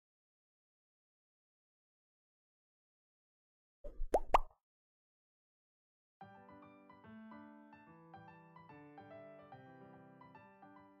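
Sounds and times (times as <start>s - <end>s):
rising bloop pops: 3.9s - 4.5s.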